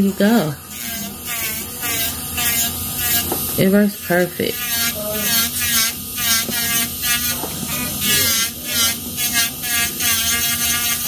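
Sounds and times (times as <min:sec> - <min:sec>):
electric nail drill whining: 0:00.0 - 0:11.0.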